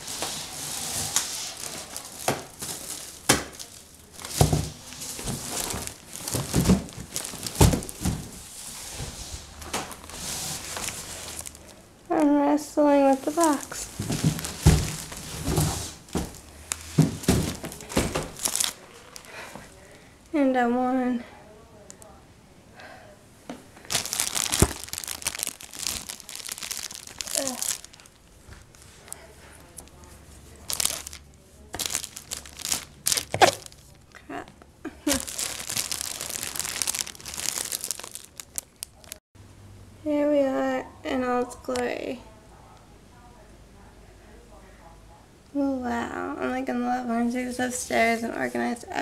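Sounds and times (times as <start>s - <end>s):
plastic wrapping crinkling: 0.0s - 11.8s, 13.0s - 19.5s, 23.8s - 34.0s, 35.0s - 39.2s
cardboard flaps scraping: 13.4s - 18.8s.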